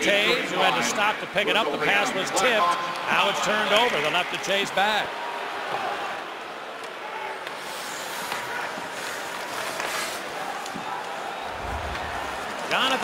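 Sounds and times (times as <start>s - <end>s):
skate blades scraping ice: 7.4s - 10.7s
crowd murmur: 10.6s - 13.0s.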